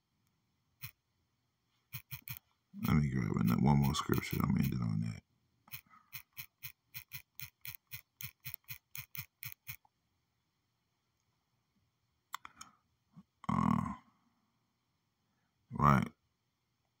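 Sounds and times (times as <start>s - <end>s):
faint clicks: 12.3s - 12.8s.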